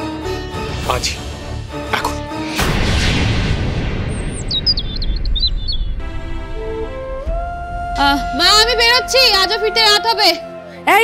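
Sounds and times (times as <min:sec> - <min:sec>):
low rumble: 0:02.6 - 0:09.6
bird chirping: 0:04.1 - 0:06.2.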